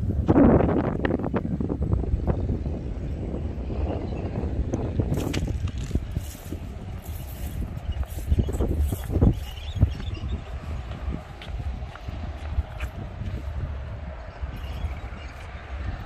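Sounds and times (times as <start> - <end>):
wind buffeting microphone: 0.0 - 16.0
footsteps on track ballast: 5.1 - 13.6.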